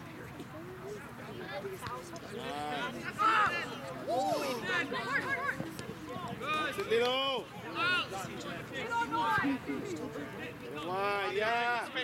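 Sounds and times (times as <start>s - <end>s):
people shouting on a sports field: 2.3s - 9.9s.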